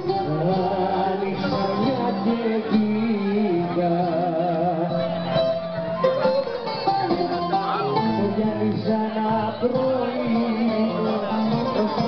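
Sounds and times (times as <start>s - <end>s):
folk dance music with plucked strings: 0.0s - 12.0s.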